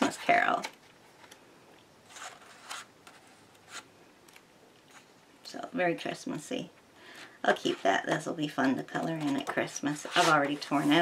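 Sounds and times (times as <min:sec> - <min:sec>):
paper pages rustling: 0:02.0 - 0:03.9, 0:08.9 - 0:11.0.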